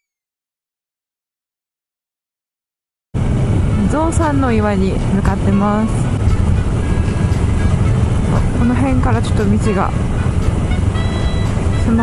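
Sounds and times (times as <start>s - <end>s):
road and wind rumble: 3.2s - 12.0s.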